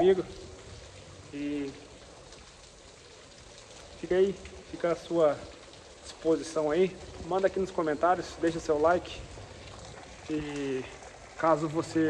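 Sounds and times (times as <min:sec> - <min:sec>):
heavy rain hissing: 0:00.0 - 0:12.0.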